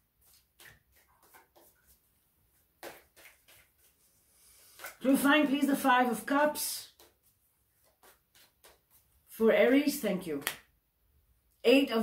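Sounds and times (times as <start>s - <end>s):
cards being shuffled: 0.2s - 2.0s, 2.8s - 5.0s, 6.9s - 9.2s
cards snapping: 7.9s - 8.9s.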